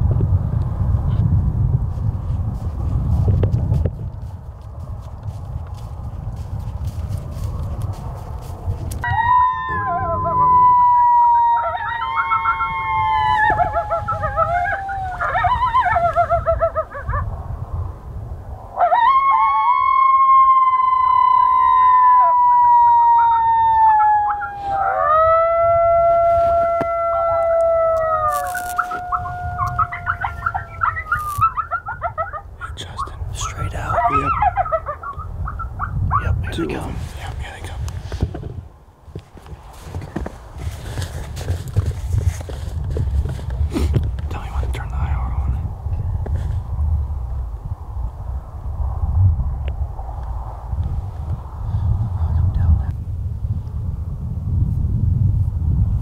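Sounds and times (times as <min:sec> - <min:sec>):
coyote howls: 0:09.0 - 0:17.3, 0:18.8 - 0:32.6, 0:33.4 - 0:36.4
coyote warbling yips: 0:09.0 - 0:17.3, 0:18.8 - 0:32.5, 0:33.7 - 0:36.3.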